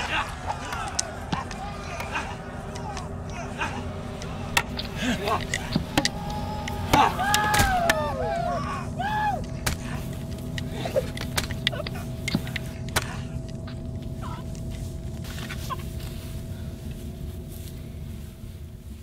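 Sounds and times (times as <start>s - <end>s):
low rumbling drone: 0.0s - 19.0s.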